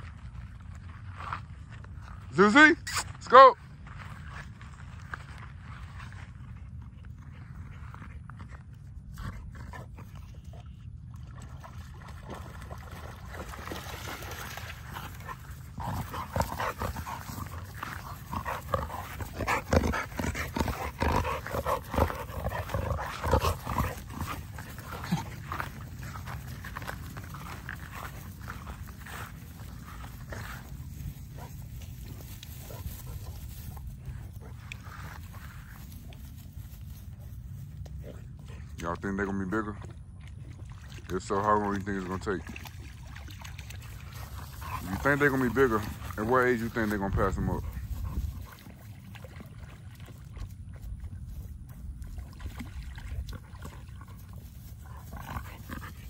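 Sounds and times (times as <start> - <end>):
scuffles through grass: 14.9 - 38.2.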